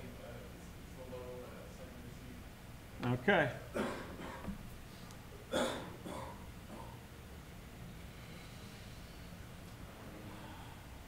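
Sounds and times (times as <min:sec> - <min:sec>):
man coughing: 0:03.7 - 0:04.6, 0:05.5 - 0:07.0.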